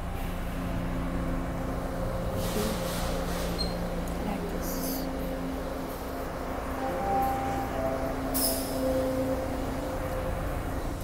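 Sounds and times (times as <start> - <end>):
subway train rumble: 0.0 - 11.0.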